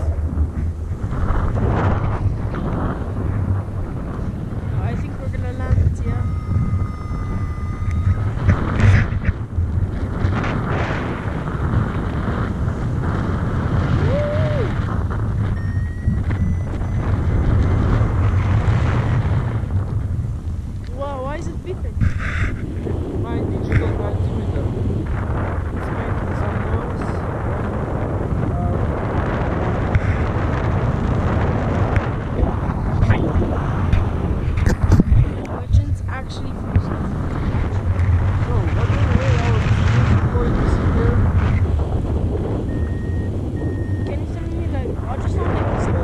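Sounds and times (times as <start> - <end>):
wind rushing over microphone: 0.0 - 46.0.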